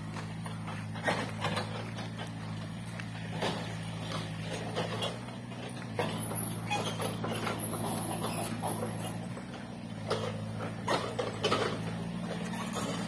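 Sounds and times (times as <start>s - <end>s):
excavator engine running: 0.0s - 13.0s
knocks and rustles: 0.2s - 13.0s.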